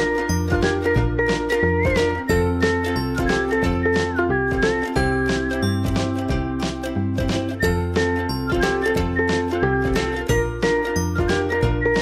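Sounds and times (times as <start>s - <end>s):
instrumental music with beat: 0.0s - 12.0s.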